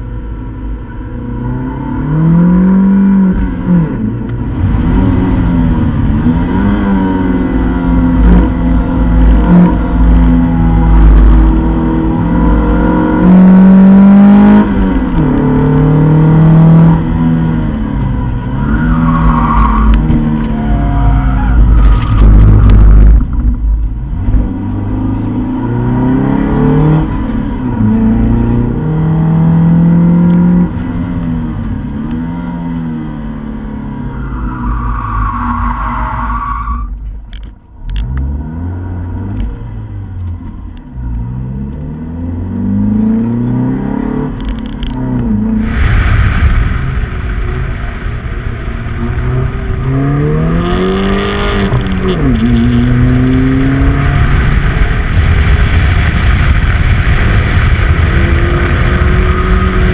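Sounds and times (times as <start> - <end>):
car engine revving under acceleration: 0.0 - 59.9.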